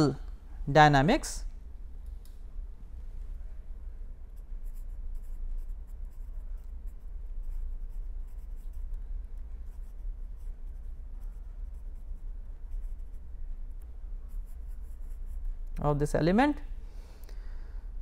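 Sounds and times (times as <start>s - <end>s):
steady low hum: 0.0s - 18.0s
marker pen writing on paper: 4.6s - 8.9s, 9.7s - 13.2s.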